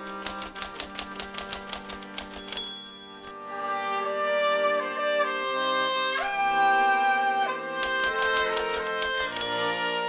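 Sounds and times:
typewriter keys clacking: 0.0s - 3.3s, 7.8s - 9.6s.

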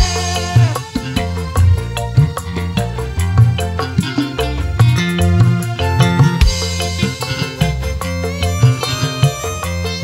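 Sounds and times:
band playing instrumental music: 0.0s - 10.0s
driving drum rhythm: 0.0s - 10.0s
keyboard melody: 0.0s - 10.0s.

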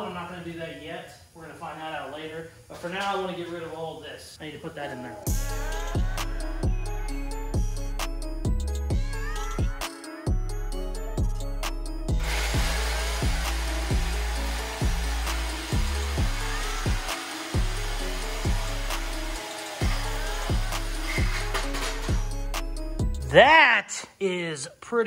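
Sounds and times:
background music with steady beat: 5.2s - 23.6s
angle grinder cutting steel: 12.2s - 22.7s.

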